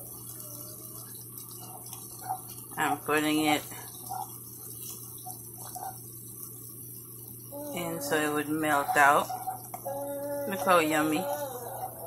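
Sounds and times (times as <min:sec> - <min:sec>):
wooden spoon stirring: 0:00.0 - 0:09.9
sauce bubbling in a pan: 0:00.0 - 0:11.2.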